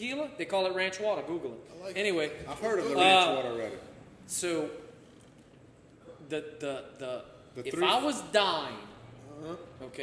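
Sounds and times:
man speaking: 0.0s - 4.9s, 6.0s - 10.0s.

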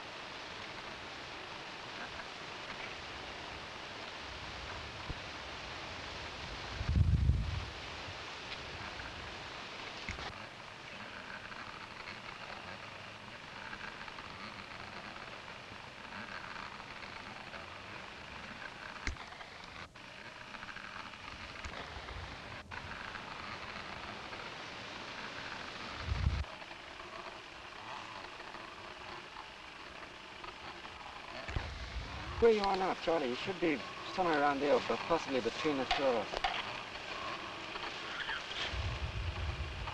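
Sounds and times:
crackling film track hiss: 0.0s - 39.9s
faint open-air ambience: 0.0s - 39.9s.

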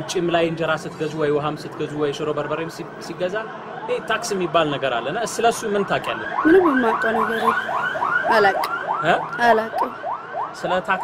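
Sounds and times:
voices: 0.0s - 7.6s, 8.3s - 10.0s
electronic alarm siren whooping: 5.4s - 11.0s.

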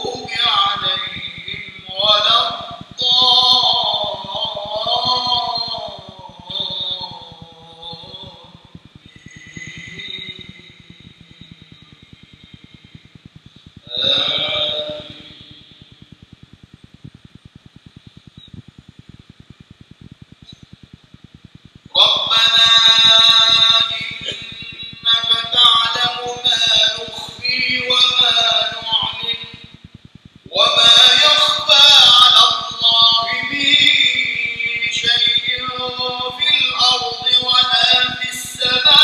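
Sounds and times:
man chanting with echo: 0.0s - 11.8s, 13.9s - 15.6s, 21.9s - 29.7s, 30.5s - 39.0s
faint rapid ticking: 0.0s - 39.0s.

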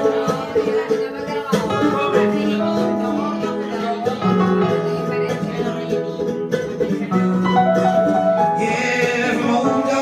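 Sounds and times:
acoustic guitar: 0.0s - 10.0s
keyboard accompaniment: 0.0s - 10.0s.

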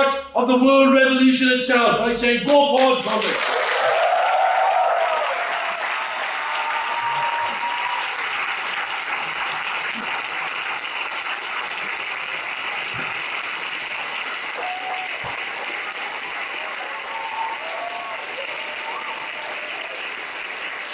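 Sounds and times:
audience clapping: 2.4s - 20.9s.

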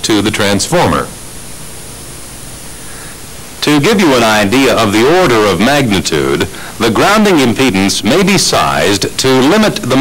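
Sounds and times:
tape hiss: 0.0s - 10.0s.

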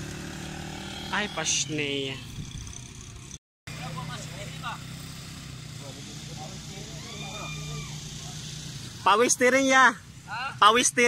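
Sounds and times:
distant quad engine humming: 0.0s - 11.0s.

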